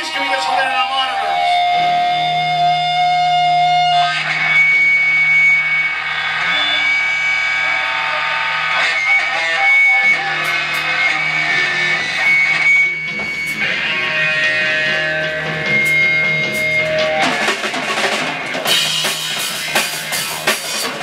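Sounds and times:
electric guitar ringing notes: 0:00.0 - 0:21.0.

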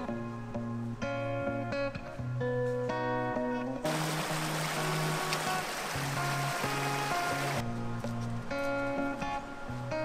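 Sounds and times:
background music: 0:00.0 - 0:10.0
brook splashing over rocks: 0:03.9 - 0:07.6.

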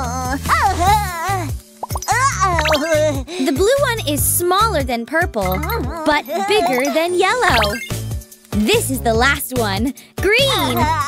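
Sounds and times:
light children's music: 0:00.0 - 0:11.0
cartoon plop sound effect: 0:01.8 - 0:02.9
cartoon character vocal sounds: 0:02.0 - 0:03.0, 0:10.4 - 0:11.0.

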